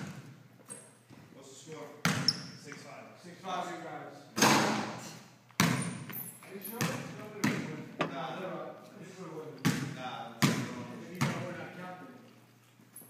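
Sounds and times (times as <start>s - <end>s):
basketball bouncing on hardwood floor: 2.0s - 2.4s, 5.6s - 6.2s, 6.8s - 7.7s, 9.6s - 11.5s.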